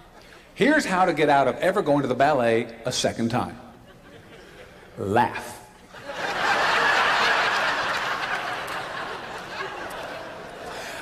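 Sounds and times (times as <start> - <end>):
audience laughing: 3.8 - 5.0, 5.9 - 11.0.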